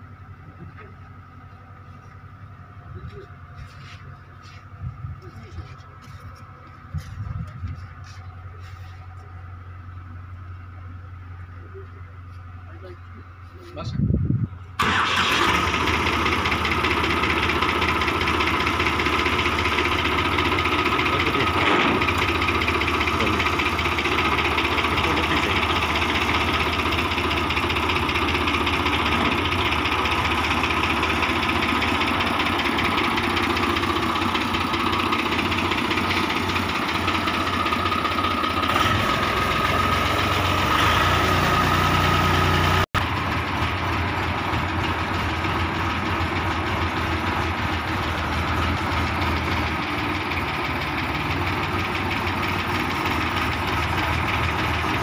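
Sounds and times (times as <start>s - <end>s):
tractor diesel engine starting: 14.6s - 55.0s.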